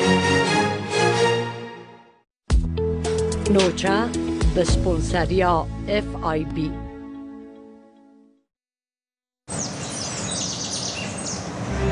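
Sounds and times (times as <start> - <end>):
birds chirping: 9.5 - 11.6
outdoor background noise: 9.5 - 11.9.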